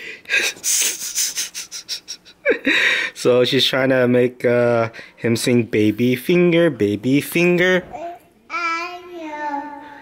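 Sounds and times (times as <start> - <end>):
toddler girl singing: 7.9 - 10.0.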